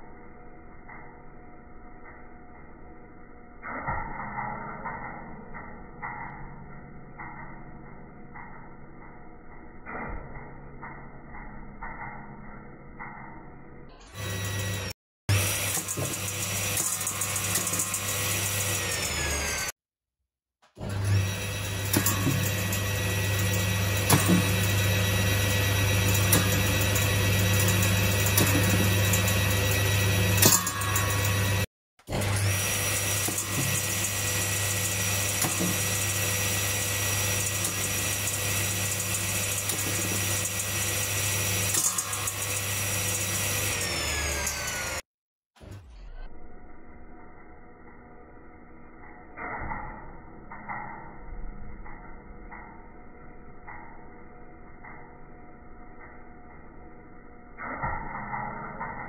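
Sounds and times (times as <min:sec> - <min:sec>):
circular saw motor whine: 0:10.8 - 0:19.8, 0:20.6 - 0:51.1
pears hitting saw blade: 0:26.0 - 0:31.7.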